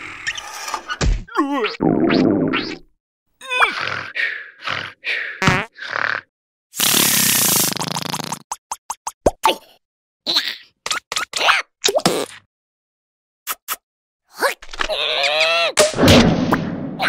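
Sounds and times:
cartoon larva grunting and squeaking: 0:01.3 - 0:08.5, 0:14.3 - 0:15.8
long hissing fart: 0:06.8 - 0:08.5.

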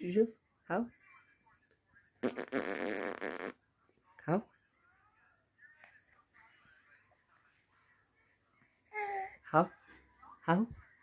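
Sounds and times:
baby blowing raspberry: 0:02.2 - 0:03.6.

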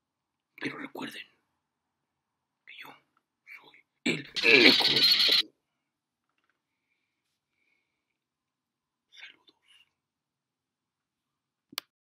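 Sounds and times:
man whispering: 0:00.6 - 0:01.4, 0:02.6 - 0:05.2, 0:09.1 - 0:09.9.

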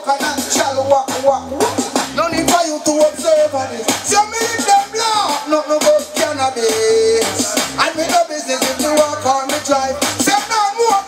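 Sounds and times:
backing track with bass and drums: 0:00.0 - 0:11.0
man singing reggae: 0:00.0 - 0:11.0.

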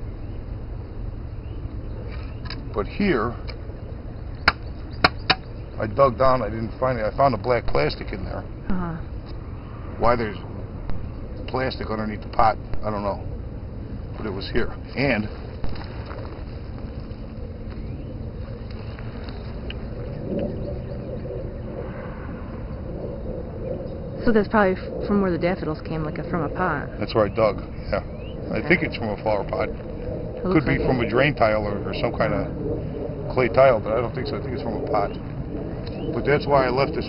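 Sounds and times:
low outdoor rumble: 0:00.0 - 0:37.0.

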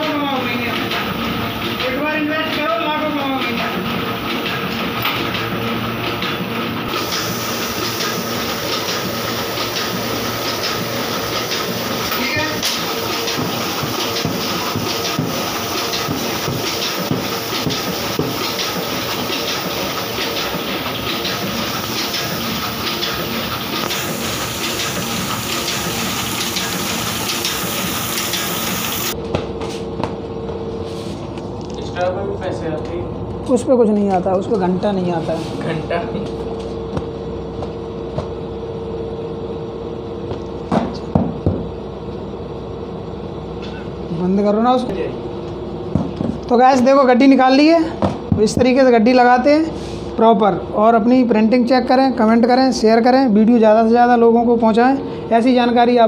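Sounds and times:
printing press clattering: 0:00.0 - 0:29.2.

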